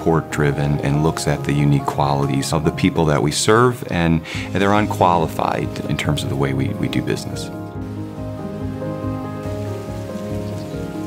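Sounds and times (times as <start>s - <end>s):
soft background music: 0.0s - 11.0s
fountain water hissing: 4.3s - 11.0s.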